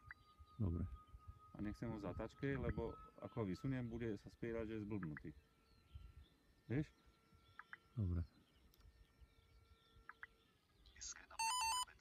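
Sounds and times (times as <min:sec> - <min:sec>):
electronic beep tune: 0:11.4 - 0:12.0.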